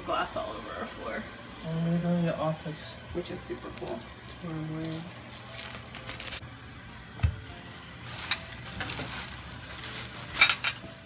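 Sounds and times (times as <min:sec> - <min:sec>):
plastic bag rustling and crinkling: 0:03.5 - 0:06.5, 0:07.4 - 0:11.0
sharp plastic crackles: 0:03.8 - 0:06.5, 0:08.0 - 0:11.0.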